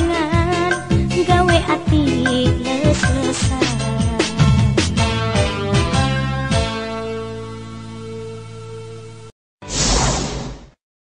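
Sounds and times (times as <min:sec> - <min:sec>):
whoosh transition effect: 0:09.6 - 0:10.8.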